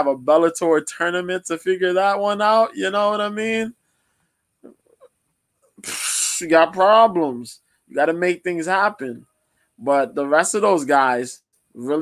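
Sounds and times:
man puffing air into microphone: 5.8 - 6.4.

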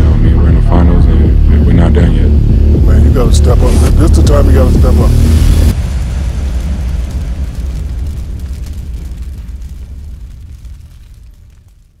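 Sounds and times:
deep cinematic boom: 0.0 - 11.0
faint crackling: 3.2 - 12.0.

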